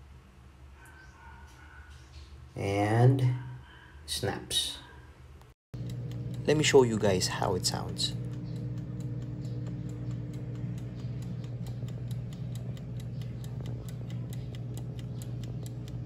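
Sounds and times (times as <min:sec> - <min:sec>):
air fryer humming: 0:05.8 - 0:16.0
light regular ticking: 0:05.8 - 0:16.0.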